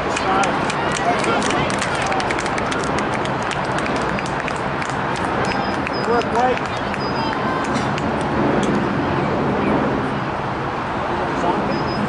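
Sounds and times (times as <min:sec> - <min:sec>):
steady rushing outdoor noise: 0:00.0 - 0:12.0.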